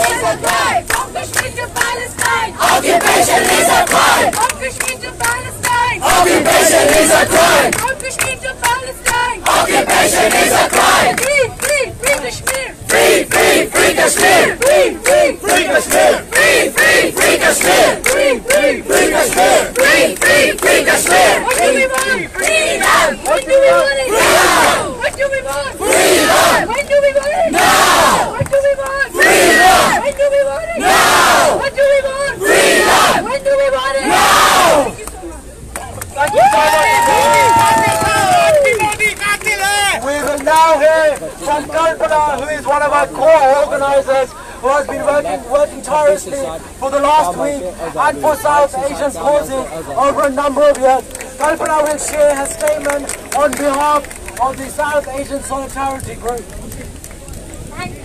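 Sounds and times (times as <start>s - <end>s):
protest crowd chanting: 0.0s - 35.1s.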